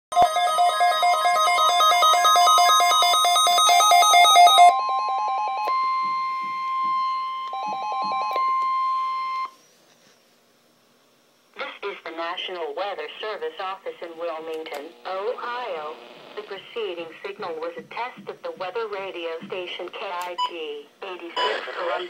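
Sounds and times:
steady high tone: 0.2 - 9.7.

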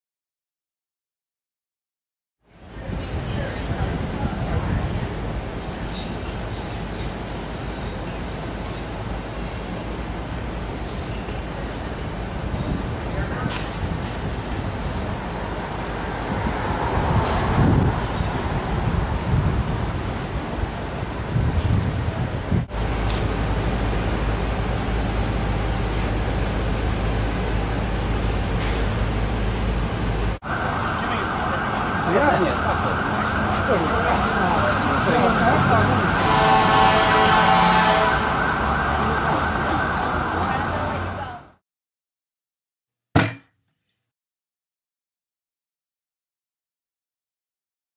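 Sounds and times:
city street noise: 2.4 - 41.6
low traffic rumble: 2.4 - 41.6
people talking: 2.8 - 5.3, 13.0 - 13.6, 31.0 - 36.5, 39.0 - 41.5
emergency siren: 30.4 - 41.4.

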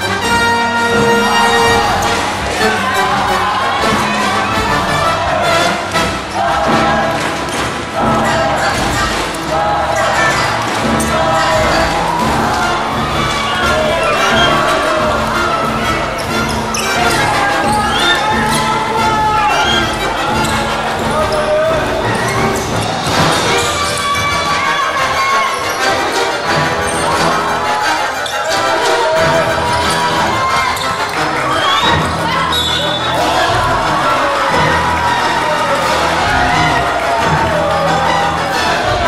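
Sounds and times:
music: 0.0 - 39.0
voices: 0.0 - 39.0.

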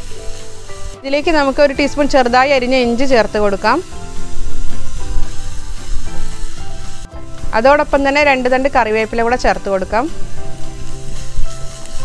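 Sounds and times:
held instrumental music: 0.0 - 12.0
onions sizzling in a pan: 0.0 - 12.0.

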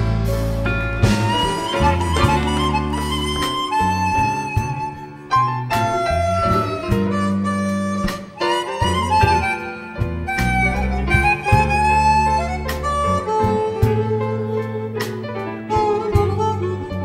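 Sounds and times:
harmonica bending notes: 0.0 - 17.0
live blues band: 0.0 - 17.0.

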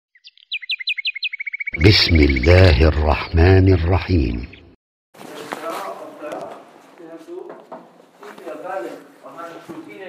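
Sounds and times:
bird singing whistles and trill: 0.2 - 1.8.

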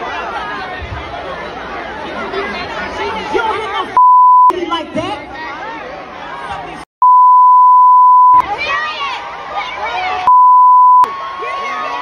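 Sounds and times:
crowd noise: 0.0 - 12.0
high-pitched censor bleep: 4.0 - 4.5, 7.0 - 8.4, 10.3 - 11.1.

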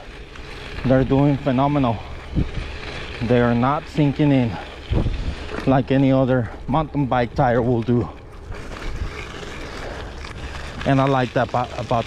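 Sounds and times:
bicycle tyres rolling on gravel: 0.0 - 12.0
wind rumbling on microphone: 0.0 - 12.0.

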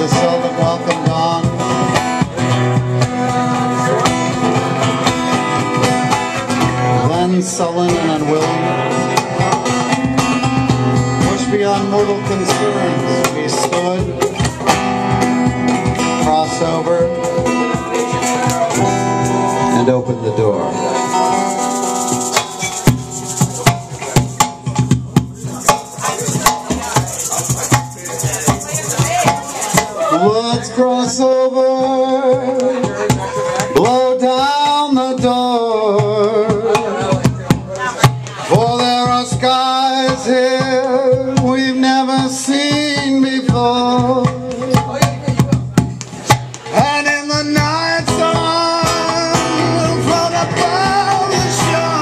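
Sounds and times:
man singing: 0.0 - 21.4, 25.4 - 45.9, 46.6 - 52.0
acoustic guitars strumming: 0.0 - 52.0
sharp percussive hits: 21.0 - 30.2.

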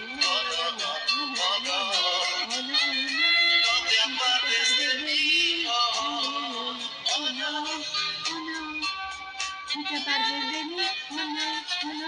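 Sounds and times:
backing track: 0.0 - 12.0
woman singing a ballad: 0.0 - 12.0.

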